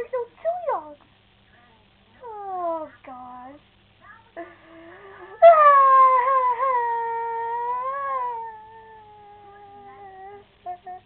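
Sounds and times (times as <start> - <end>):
long dog-like howl: 5.4 - 10.9.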